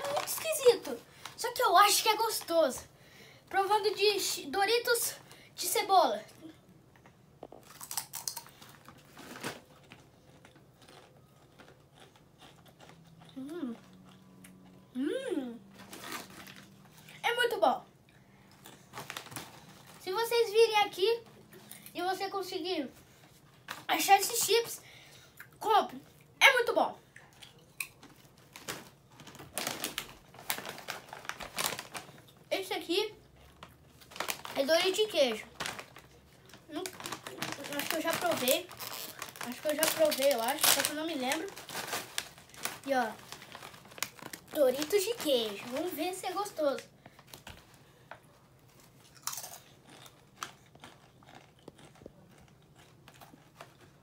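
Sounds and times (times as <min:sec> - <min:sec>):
plastic snack bags crinkling: 0:00.0 - 0:02.9, 0:03.5 - 0:05.8, 0:07.4 - 0:14.6, 0:15.6 - 0:17.2, 0:18.4 - 0:22.0, 0:27.3 - 0:54.0
chip crunching while chewed: 0:07.0 - 0:14.9, 0:15.6 - 0:17.2, 0:27.2 - 0:32.5, 0:33.2 - 0:46.0, 0:48.6 - 0:54.0.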